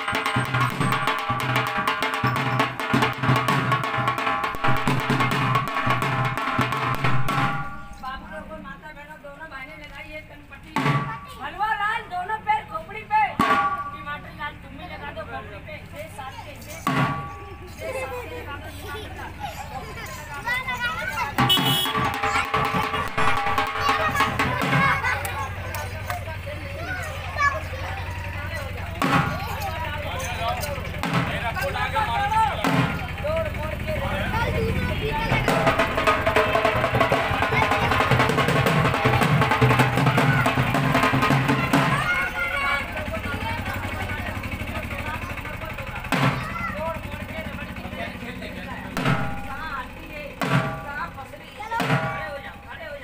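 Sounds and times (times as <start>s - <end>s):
metallic drum clang: 0.0s - 8.1s, 13.4s - 14.2s, 16.8s - 17.8s, 21.3s - 25.0s, 48.9s - 49.8s, 50.4s - 51.2s, 51.8s - 52.6s
onlookers' voices: 10.1s - 53.0s
small engine idling: 13.8s - 53.0s.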